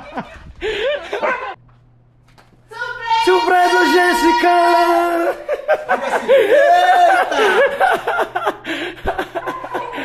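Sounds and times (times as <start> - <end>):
people laughing: 0.0 - 1.6, 4.8 - 10.0
person calling out: 2.8 - 5.4.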